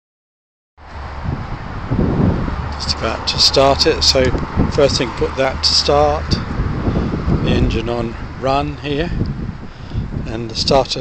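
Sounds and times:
outdoor background noise: 0:00.8 - 0:11.0
wind on microphone: 0:00.8 - 0:11.0.

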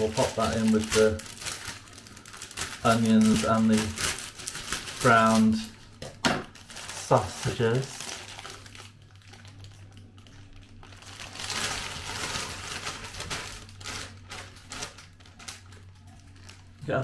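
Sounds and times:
low steady hum: 0:00.0 - 0:17.0
plastic packaging crinkling: 0:00.0 - 0:17.0.

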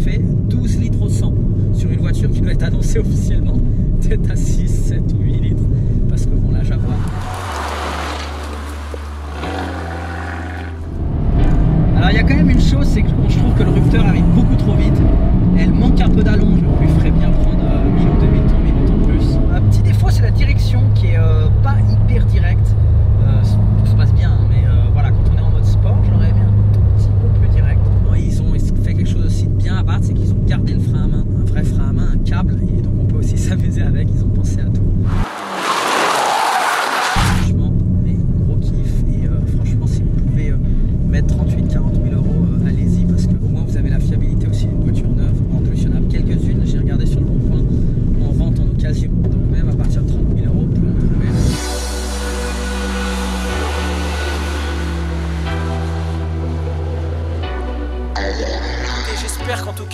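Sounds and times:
car engine running: 0:05.2 - 0:18.4, 0:51.7 - 0:59.9.

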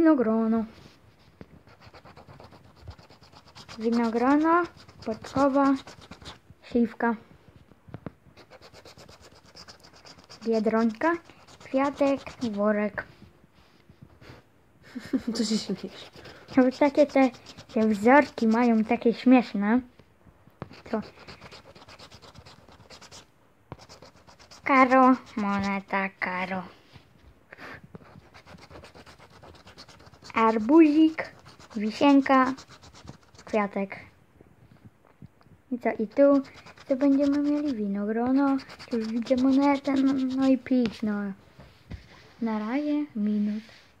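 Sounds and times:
scraping lottery ticket: 0:01.8 - 0:06.4, 0:08.5 - 0:12.6, 0:15.4 - 0:18.9, 0:20.8 - 0:23.2, 0:28.2 - 0:33.6, 0:36.3 - 0:37.8, 0:38.4 - 0:40.5.

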